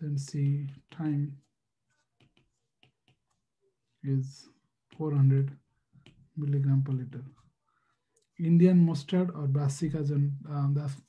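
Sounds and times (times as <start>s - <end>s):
stylus tapping on tablet screen: 0.7s - 3.6s, 5.9s - 6.5s.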